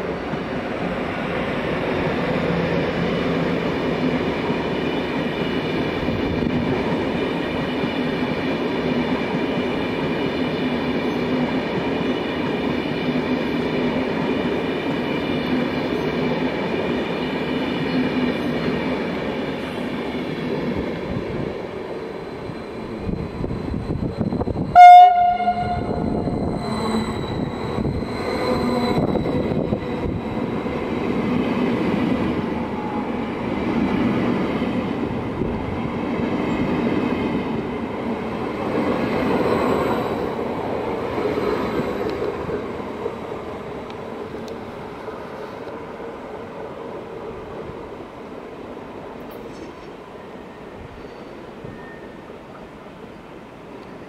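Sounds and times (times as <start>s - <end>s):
electric train whine and rolling: 0.0s - 54.0s
loud train horn blast: 24.7s - 26.3s.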